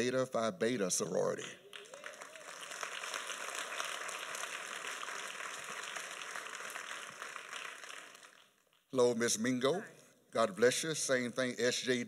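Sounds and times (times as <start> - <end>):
congregation applauding: 1.5 - 8.9.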